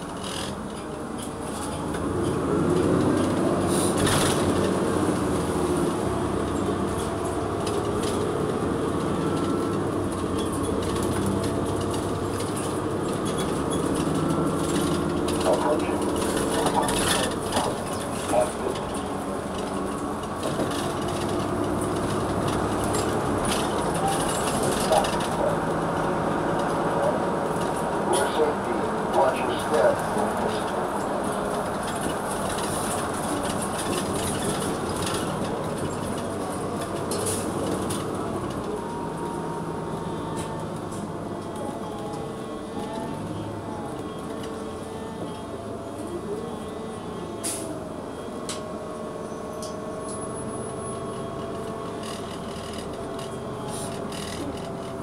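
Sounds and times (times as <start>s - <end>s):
bus engine running under load: 0.0s - 55.0s
road rumble: 0.0s - 55.0s.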